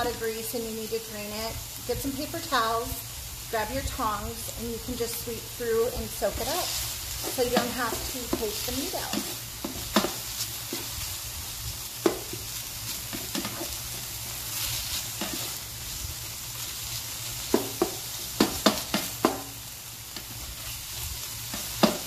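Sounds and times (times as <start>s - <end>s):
meat sizzling in a skillet: 0.0s - 22.0s
spoon scraping a pan: 12.0s - 13.8s, 14.5s - 15.6s.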